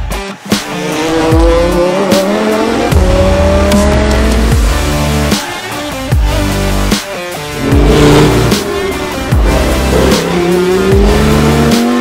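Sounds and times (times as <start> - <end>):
electronic music with heavy beat: 0.0 - 12.0
race car engine rising in pitch: 0.7 - 5.2, 7.6 - 12.0.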